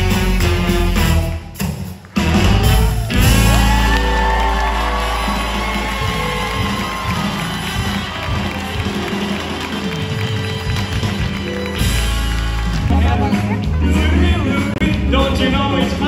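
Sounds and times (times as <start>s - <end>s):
live rock band playing: 0.0s - 16.0s
audience cheering: 2.0s - 14.6s.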